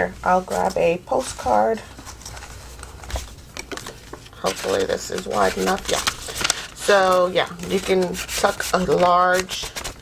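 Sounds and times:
paper rustling and ticking: 2.0s - 10.0s.

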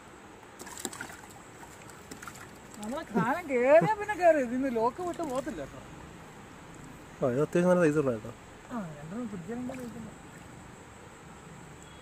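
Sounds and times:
water splashing: 0.4s - 6.0s, 6.6s - 11.0s.

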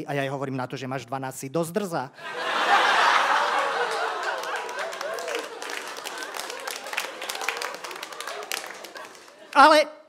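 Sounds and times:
audience laughing: 2.2s - 9.6s
audience applauding: 2.3s - 9.7s.

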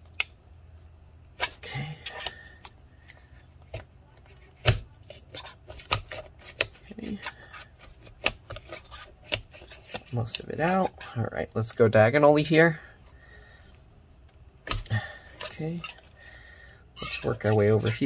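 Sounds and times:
metal blade scraping with clicks: 17.0s - 18.0s.

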